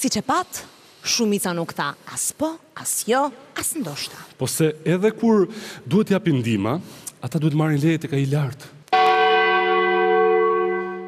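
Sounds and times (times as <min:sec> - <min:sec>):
bell ringing: 0:09.0 - 0:11.0.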